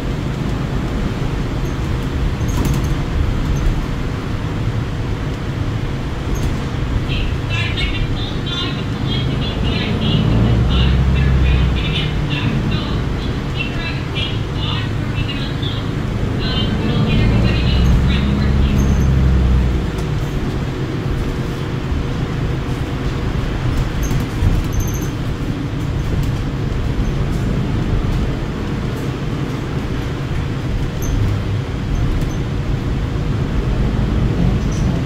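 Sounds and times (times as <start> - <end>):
bus interior running noise: 0.0 - 35.0.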